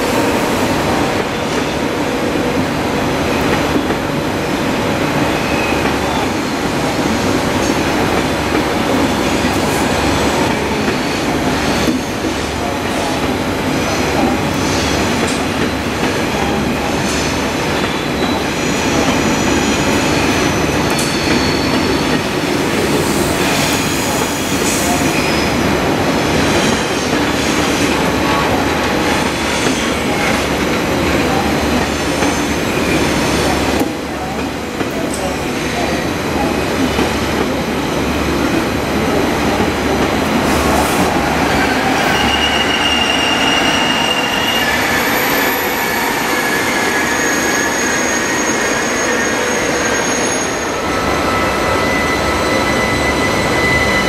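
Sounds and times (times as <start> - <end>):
train wheels rumbling on rail: 0.0 - 54.0
high wheel squeals: 41.3 - 54.0.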